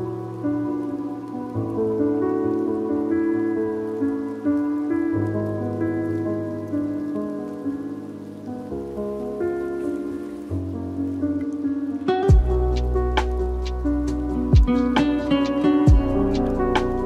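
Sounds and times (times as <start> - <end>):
lofi music with soft chords: 0.0 - 17.0
rain sound texture: 0.0 - 17.0.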